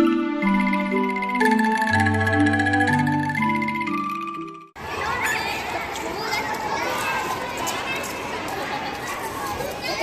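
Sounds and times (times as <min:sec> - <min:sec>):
babble of children's voices: 0:04.8 - 0:10.0.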